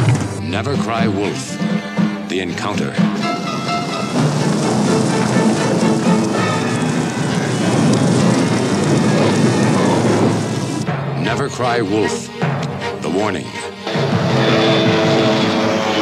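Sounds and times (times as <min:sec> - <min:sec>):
stampede of hooves: 0:00.0 - 0:10.8
film music: 0:00.0 - 0:16.0.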